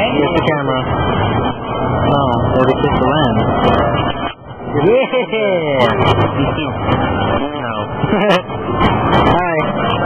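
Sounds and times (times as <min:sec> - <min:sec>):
person laughing: 0:08.0 - 0:08.5.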